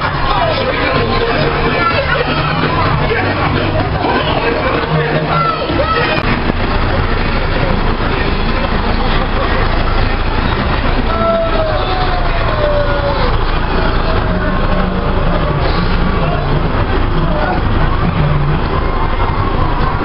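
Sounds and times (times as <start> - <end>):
lorry engine rumbling: 0.0 - 20.0
people's voices: 0.0 - 20.0.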